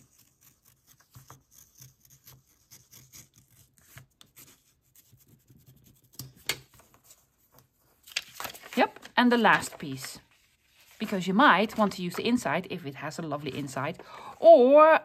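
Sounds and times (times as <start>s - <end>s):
craft knife slicing paper: 0.0s - 5.2s
paper rustling: 0.0s - 12.6s.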